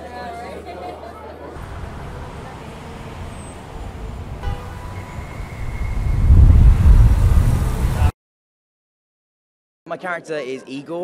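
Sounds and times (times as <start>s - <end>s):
road traffic rumble: 1.5s - 8.1s
vehicle passing close: 1.6s - 8.1s.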